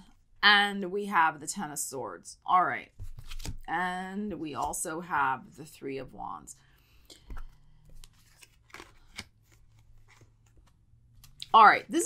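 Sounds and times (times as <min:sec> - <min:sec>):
cards clicking and rustling: 0:03.0 - 0:03.7, 0:07.2 - 0:11.5.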